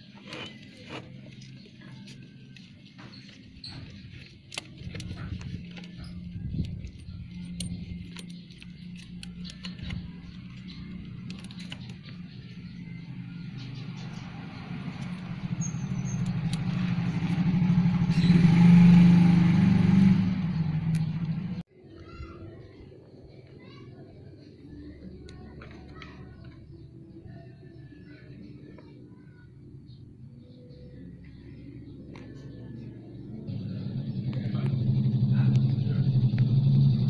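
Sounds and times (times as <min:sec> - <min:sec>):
scooter engine running: 0:00.3 - 0:21.6, 0:32.2 - 0:37.0.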